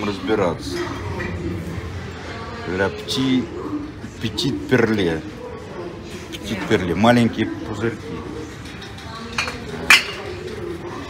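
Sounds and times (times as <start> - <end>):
steady low hum: 0.0 - 6.3.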